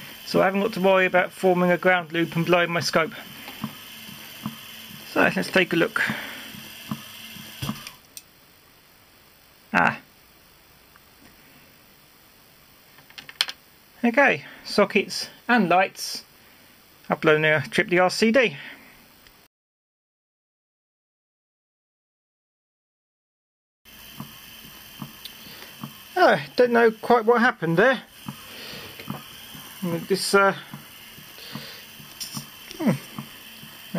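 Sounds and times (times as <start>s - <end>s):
steady background hiss: 0.0s - 19.5s, 24.0s - 33.9s.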